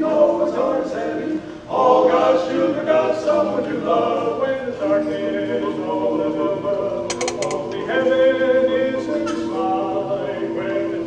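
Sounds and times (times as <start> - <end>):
male quartet singing harmony: 0.0 - 11.0
sharp ticks: 7.1 - 7.8.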